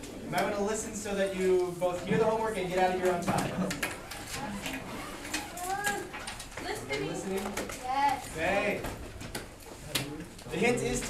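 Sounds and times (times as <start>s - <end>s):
students talking quietly: 0.0s - 11.0s.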